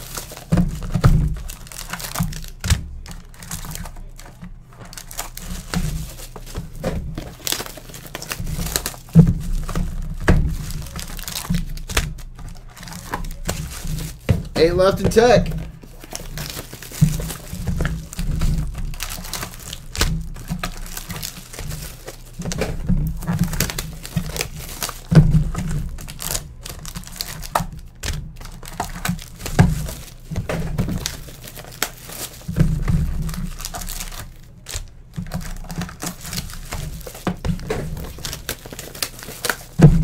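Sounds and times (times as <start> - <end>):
plastic wrap tearing and crinkling: 0.0 - 40.0.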